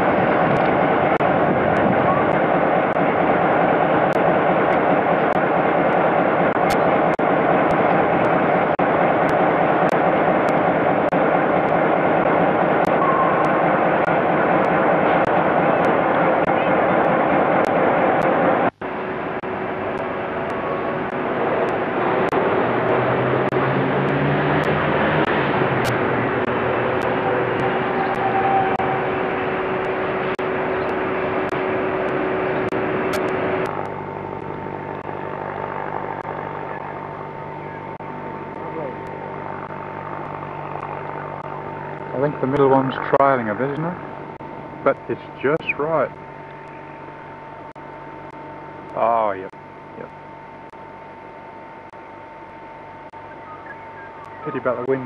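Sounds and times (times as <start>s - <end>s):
steam locomotive working: 0.0s - 33.7s
low engine-like drone: 0.0s - 55.0s.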